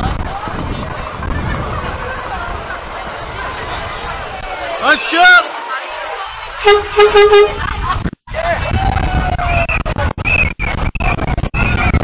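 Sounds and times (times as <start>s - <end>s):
lorry horn toots: 6.6s - 7.7s.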